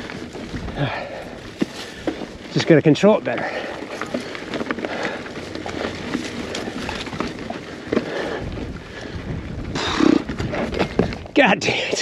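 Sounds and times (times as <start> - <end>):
wind noise on microphone: 0.0 - 2.4, 4.2 - 11.4
bike tyres rolling over rocks: 0.0 - 12.0.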